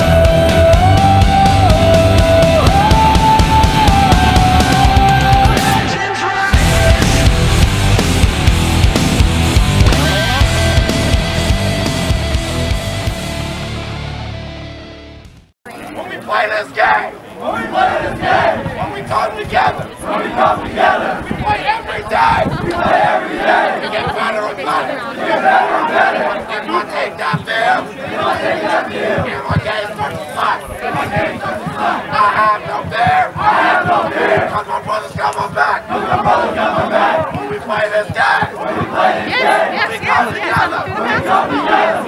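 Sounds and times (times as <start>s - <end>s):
team chanting in unison: 16.0s - 42.0s.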